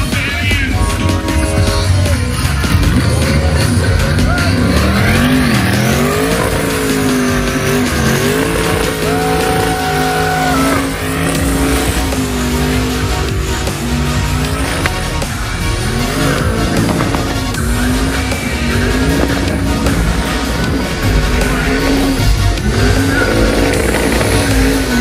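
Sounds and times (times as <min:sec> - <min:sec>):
car engine revving hard: 0:00.0 - 0:25.0
tires spinning: 0:00.0 - 0:25.0.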